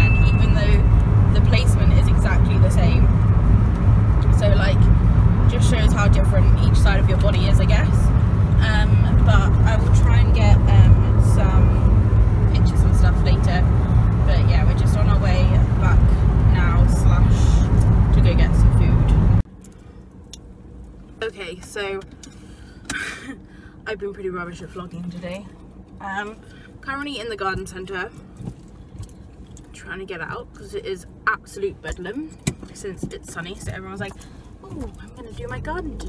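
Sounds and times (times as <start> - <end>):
indistinct voices: 0.0 - 3.2, 4.2 - 19.4
car engine and tyre rumble: 0.0 - 36.0.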